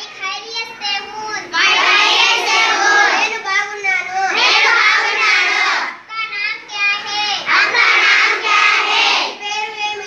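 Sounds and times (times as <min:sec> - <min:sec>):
children singing in unison: 0:01.6 - 0:03.2, 0:04.3 - 0:06.0, 0:07.5 - 0:09.4.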